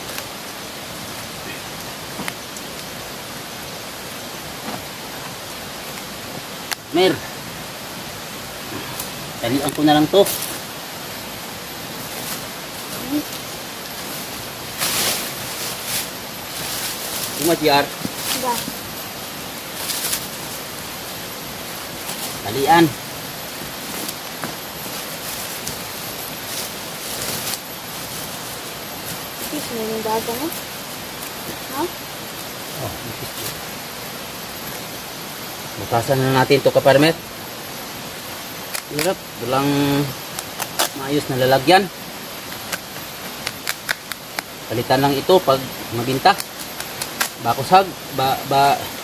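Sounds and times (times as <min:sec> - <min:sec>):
steady outdoor hiss: 0:00.0 - 0:49.0.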